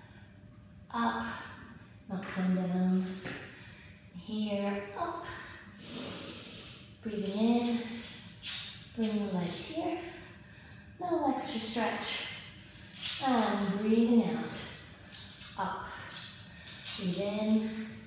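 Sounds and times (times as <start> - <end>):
woman breathing: 5.6 - 7.0, 10.1 - 11.0.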